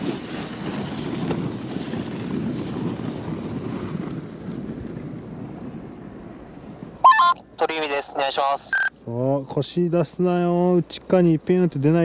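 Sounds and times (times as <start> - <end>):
wind on microphone: 0.0 - 7.0.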